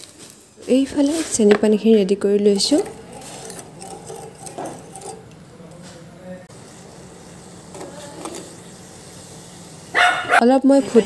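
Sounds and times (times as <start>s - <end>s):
woman talking: 0.7s - 3.0s, 10.4s - 11.0s
batter sizzling in hot oil: 6.5s - 11.0s.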